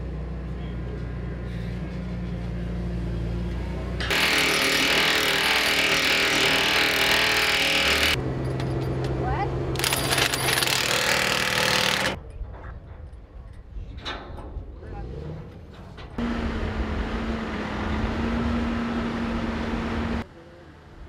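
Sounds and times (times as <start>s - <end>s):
power tool driving bolt: 4.0s - 8.2s, 9.8s - 12.2s
diesel engine humming: 15.1s - 21.0s.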